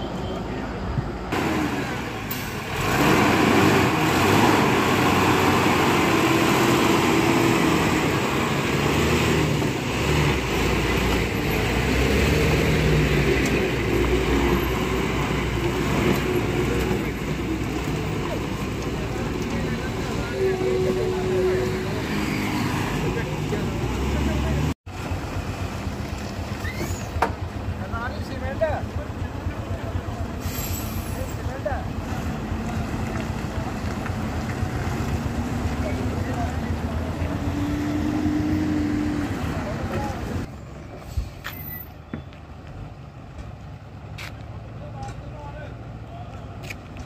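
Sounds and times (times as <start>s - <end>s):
highway traffic noise: 0.0s - 47.0s
road noise: 0.0s - 47.0s
heavy vehicle engine running: 0.8s - 47.0s.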